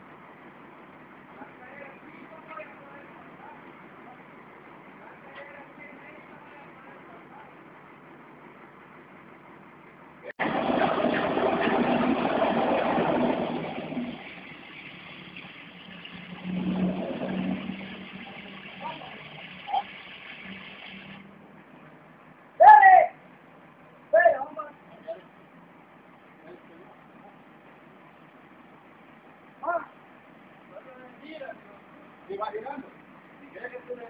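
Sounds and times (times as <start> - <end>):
crane engine revving under load: 10.4 - 21.7.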